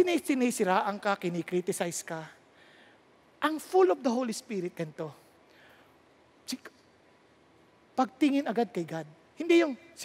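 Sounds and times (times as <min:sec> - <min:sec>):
man speaking: 0:00.0 - 0:02.4, 0:03.4 - 0:05.4, 0:06.4 - 0:06.8, 0:07.9 - 0:10.0.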